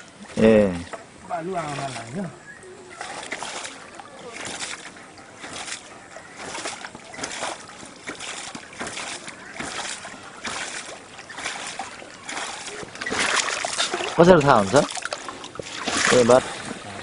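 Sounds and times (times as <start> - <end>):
water gushing into plastic bowl: 2.9 - 17.0.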